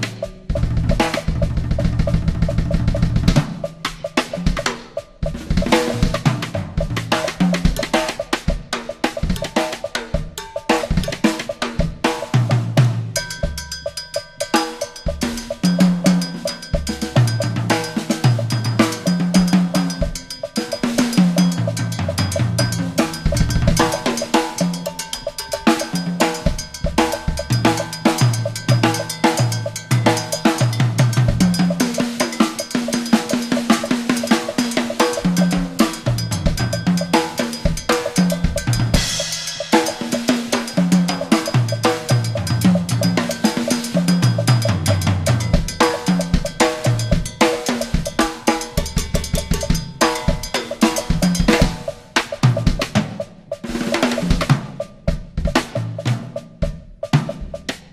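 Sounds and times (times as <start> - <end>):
cowbell pattern: 0.0 - 57.9
drum kit solo: 0.0 - 57.9
cymbal wash: 13.2 - 52.0.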